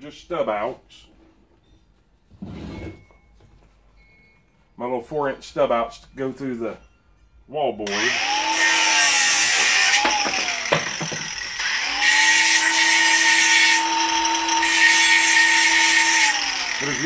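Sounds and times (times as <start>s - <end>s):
angle grinder whining: 7.9s - 17.0s
disc grinding plastic pipe: 9.0s - 17.0s.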